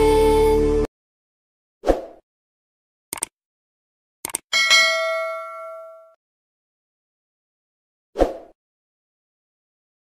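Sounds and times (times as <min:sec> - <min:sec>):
mouse clicks: 0:03.1 - 0:03.3, 0:04.2 - 0:04.4
bright bell ding: 0:04.5 - 0:06.2.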